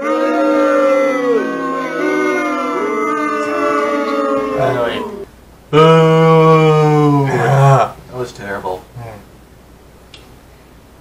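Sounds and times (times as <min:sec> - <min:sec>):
person vocalising wordlessly: 0:00.0 - 0:08.0.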